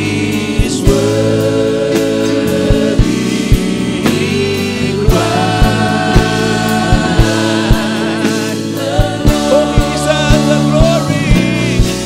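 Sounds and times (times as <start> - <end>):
band chords: 0.0 - 12.0
man singing into microphone: 0.0 - 12.0
steady low beat: 0.0 - 12.0.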